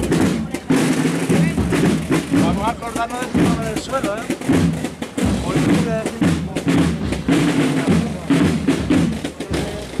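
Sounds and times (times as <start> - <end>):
band playing a march: 0.0 - 10.0
bass drum: 0.0 - 10.0
snare drum: 0.0 - 10.0.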